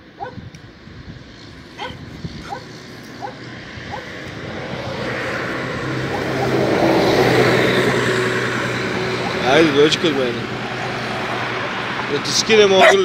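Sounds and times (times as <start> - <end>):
bus engine and road noise: 0.0 - 13.0.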